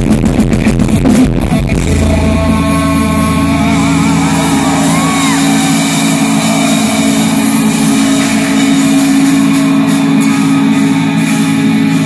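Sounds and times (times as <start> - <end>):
loud steady low drone: 0.0 - 12.0.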